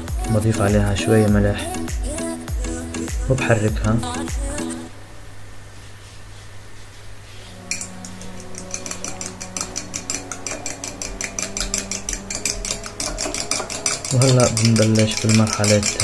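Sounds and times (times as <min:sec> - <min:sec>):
utensil clicking against glass: 0:07.7 - 0:16.0.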